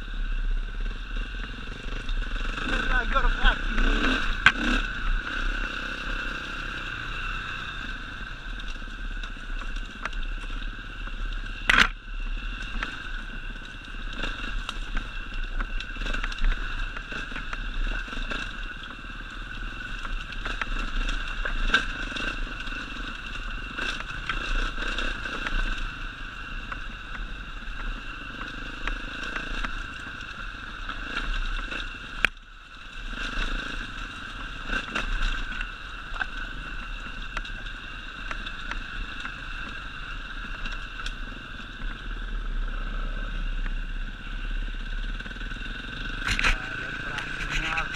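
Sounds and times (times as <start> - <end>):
dirt bike engine running: 0.0 - 47.9.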